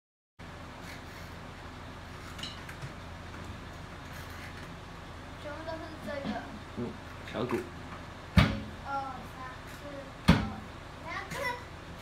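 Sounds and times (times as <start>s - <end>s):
low room hum: 0.4s - 12.0s.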